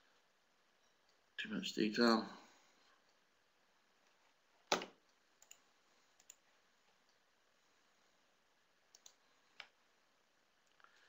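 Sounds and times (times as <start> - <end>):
computer mouse clicks: 4.7 - 5.6, 6.2 - 6.4, 8.9 - 9.8.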